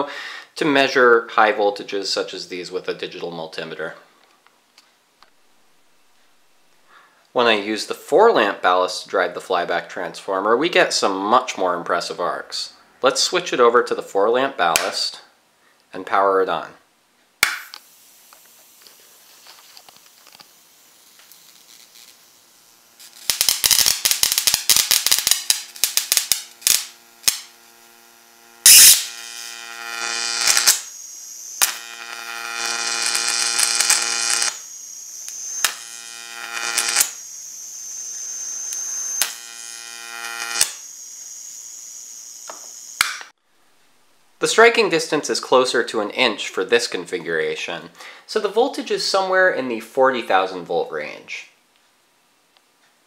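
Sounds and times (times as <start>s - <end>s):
rapid snapping sparks: 17.4s - 27.8s, 28.6s - 31.0s, 31.6s - 37.2s, 38.6s - 39.5s, 40.2s - 40.8s, 43.0s - 43.3s
buzzing arc with high whine: 17.4s - 45.4s
loud arc crack: 20.1s - 27.9s, 28.6s - 39.6s, 40.2s - 41.6s.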